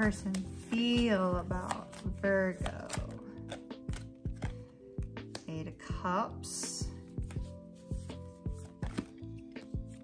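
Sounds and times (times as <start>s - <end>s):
cards clicking and tapping: 0.0s - 5.5s, 8.6s - 10.0s
soft sustained background music: 0.0s - 10.0s.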